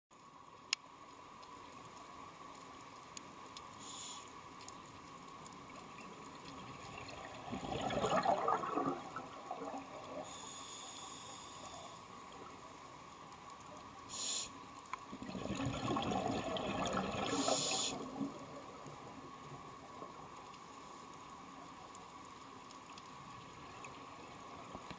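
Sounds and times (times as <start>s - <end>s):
regulator hissing inhale: 3.8s - 4.4s, 10.2s - 12.1s, 14.1s - 14.7s, 17.3s - 18.1s
exhaled bubbles burbling: 6.6s - 10.2s, 15.1s - 18.6s.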